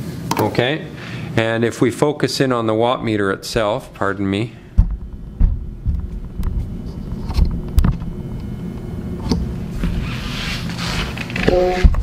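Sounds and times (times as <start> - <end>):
knocks and bumps: 4.7 - 8.0
camera handling rumble: 4.8 - 8.2.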